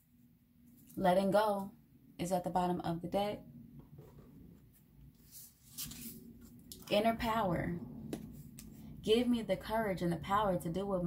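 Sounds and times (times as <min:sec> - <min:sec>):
paper cards sliding on a table: 0:05.2 - 0:06.2.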